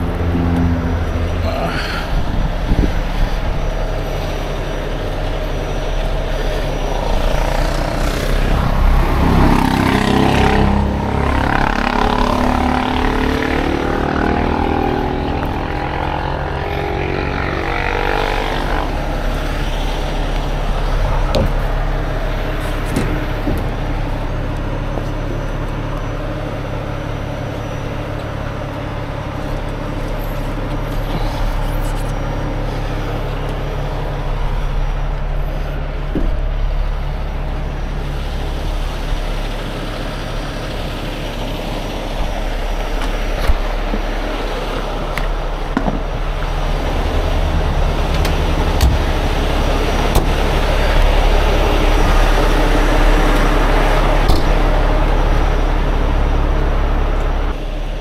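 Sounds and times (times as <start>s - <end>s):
diesel engine running: 0.0s - 58.0s
rigging clicks and knocks: 48.1s - 49.2s.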